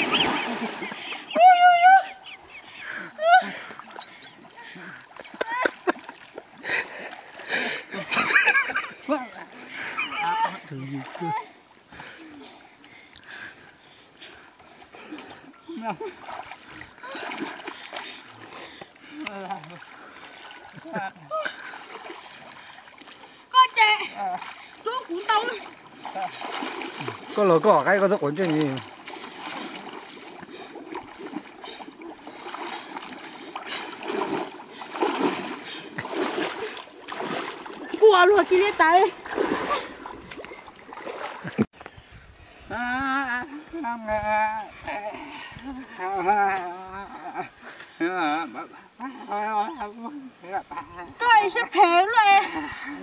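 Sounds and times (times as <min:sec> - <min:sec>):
muddy water splashing: 0:00.0 - 0:53.0
woman exclaiming: 0:01.3 - 0:02.3, 0:23.6 - 0:25.6.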